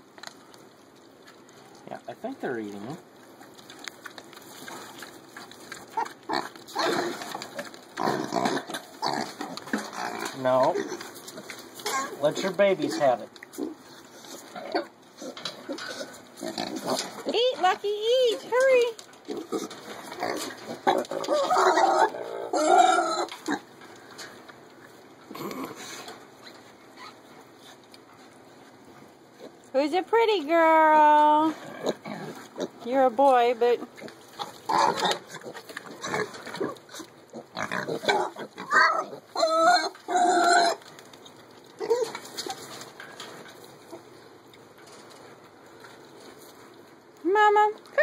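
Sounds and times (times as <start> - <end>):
piglets grunting and squealing: 5.8 - 12.3, 13.6 - 17.4, 19.3 - 23.7, 25.3 - 26.0, 31.4 - 32.8, 33.8 - 40.9, 41.8 - 42.6
piglets squealing: 20.8 - 23.6, 37.4 - 40.8.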